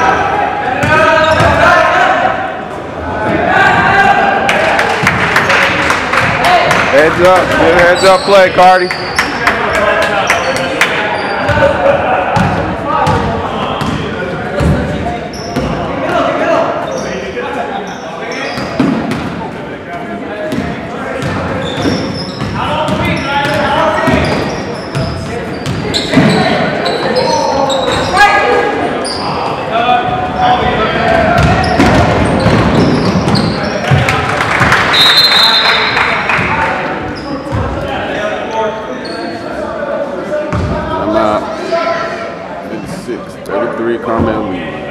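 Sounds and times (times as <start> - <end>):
voices shouting in echoing hall: 0.0 - 44.9
basketball bouncing on court: 20.5 - 26.4, 31.1 - 34.7.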